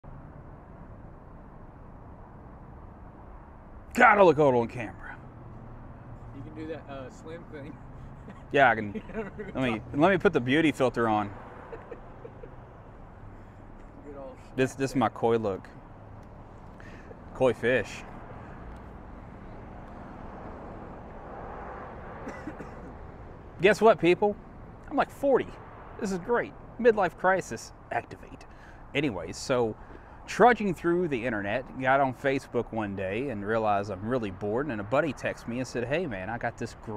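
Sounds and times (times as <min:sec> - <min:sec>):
distant traffic hum: 0:00.0 - 0:36.9
outdoor background noise: 0:00.0 - 0:36.9
man speaking: 0:03.9 - 0:05.2, 0:06.4 - 0:07.8, 0:08.4 - 0:11.4, 0:14.0 - 0:15.7, 0:17.4 - 0:18.1, 0:23.6 - 0:36.9.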